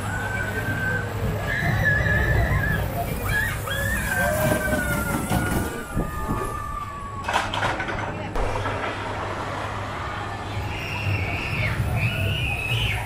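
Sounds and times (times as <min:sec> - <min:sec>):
roller coaster rolling on steel track: 0:00.0 - 0:13.0.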